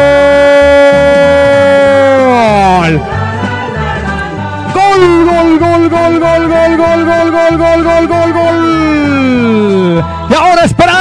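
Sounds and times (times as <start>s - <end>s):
man shouting: 0.0s - 3.0s, 4.7s - 11.0s
music with repeating bass beat: 0.0s - 10.8s.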